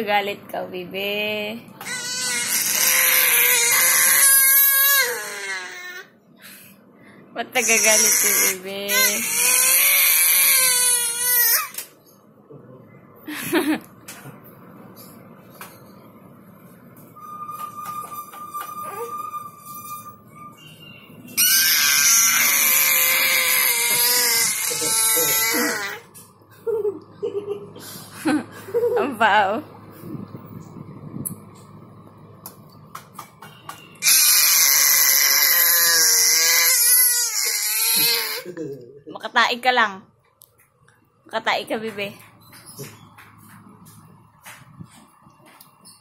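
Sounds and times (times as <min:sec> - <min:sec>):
baby screaming: 0:01.8 - 0:06.1, 0:07.6 - 0:11.8, 0:21.4 - 0:26.1, 0:34.0 - 0:38.5.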